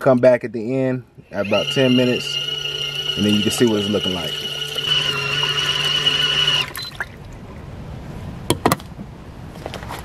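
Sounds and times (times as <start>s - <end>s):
washing machine motor whine: 1.2s - 7.2s
short beep: 1.3s - 7.1s.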